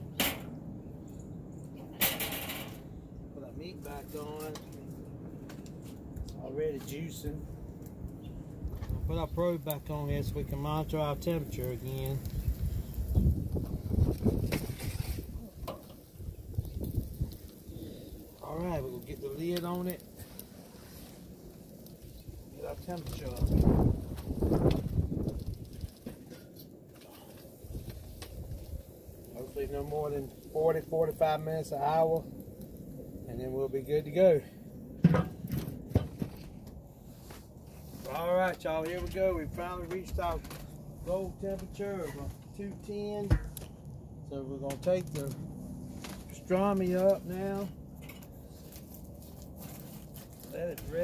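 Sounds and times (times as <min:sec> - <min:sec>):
wind buffeting microphone: 0:03.0 - 0:20.1, 0:21.9 - 0:26.0, 0:27.4 - 0:46.4
metal grill lid clunking down: 0:35.0 - 0:35.4.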